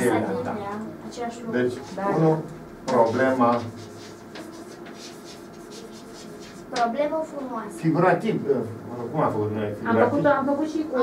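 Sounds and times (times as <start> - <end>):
chalk scratching on blackboard: 2.9 - 6.9.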